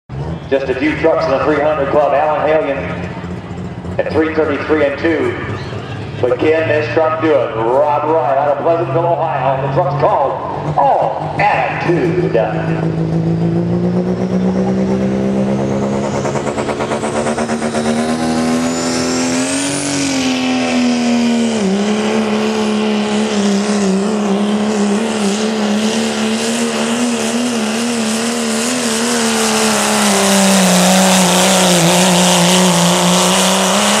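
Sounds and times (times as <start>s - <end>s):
diesel engine at full throttle: 0.1s - 34.0s.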